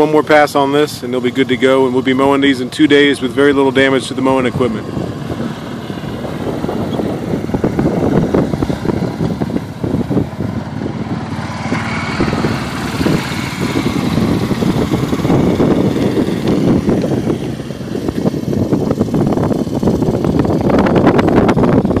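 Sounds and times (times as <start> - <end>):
utility vehicle engine running: 0.0 - 22.0.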